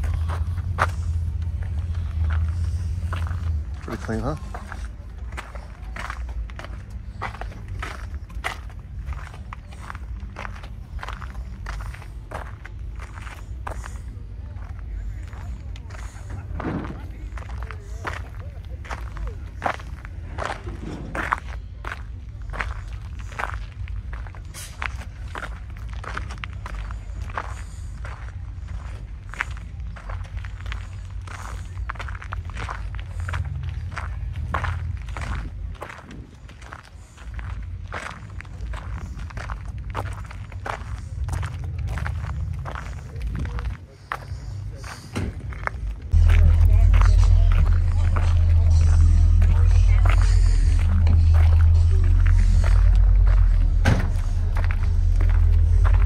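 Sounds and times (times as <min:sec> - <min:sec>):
loud low rumble: 0:00.0 - 0:43.8, 0:44.4 - 0:56.0
footsteps on pavement: 0:00.0 - 0:56.0
low steady rumble: 0:00.0 - 0:56.0.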